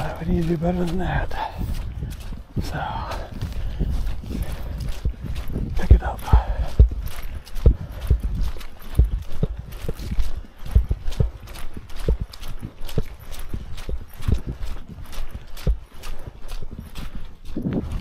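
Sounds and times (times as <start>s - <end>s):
footsteps on gravel trail: 0.0s - 18.0s.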